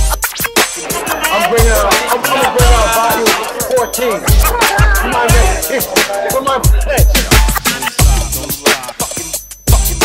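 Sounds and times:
hip hop bass kick drum: 0:00.0 - 0:05.8, 0:06.6 - 0:10.0
record scratching: 0:00.0 - 0:06.1.

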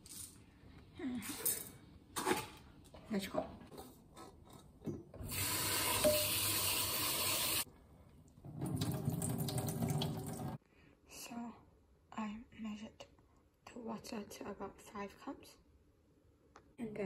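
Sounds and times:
tap water running into pot: 0:05.2 - 0:07.6, 0:08.5 - 0:10.6.

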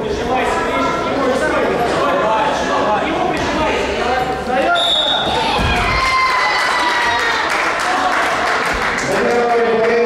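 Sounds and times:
voices echoing in a hall: 0:00.0 - 0:10.0
high whistle blast: 0:04.7 - 0:05.3.

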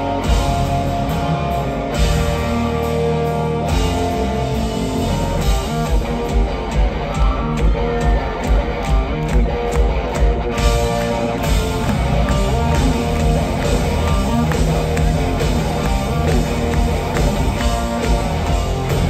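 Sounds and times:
live hard rock band: 0:00.0 - 0:19.0
drum beat: 0:00.2 - 0:19.0.

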